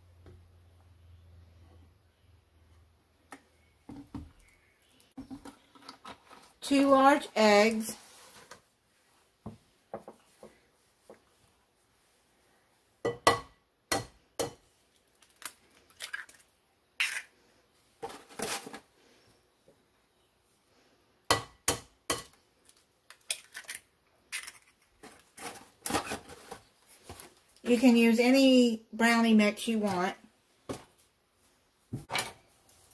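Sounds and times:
eggs cracking against a bowl: 13.1 - 17.4, 22.1 - 24.9.

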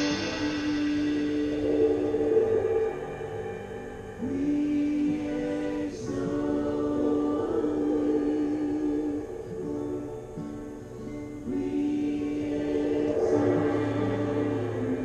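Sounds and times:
voices singing worship music: 0.0 - 15.0.

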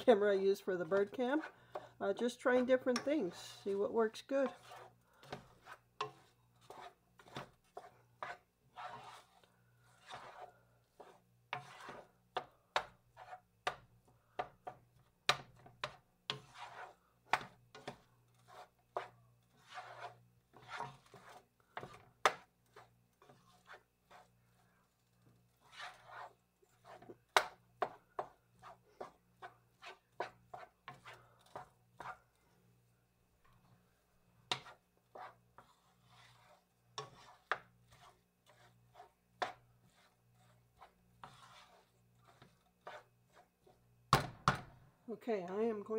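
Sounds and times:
wooden spoon scraping a skillet: 0.0 - 44.1.

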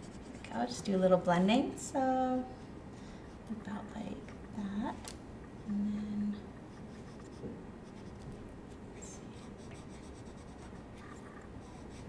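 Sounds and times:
marker scratching on paper: 6.7 - 8.4, 9.1 - 12.0.

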